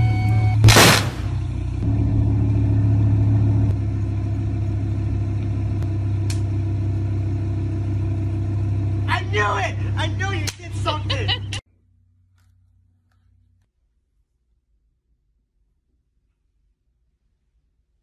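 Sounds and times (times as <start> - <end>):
loud sharp burst: 0.6 - 1.4
sports car engine idling: 1.2 - 11.6.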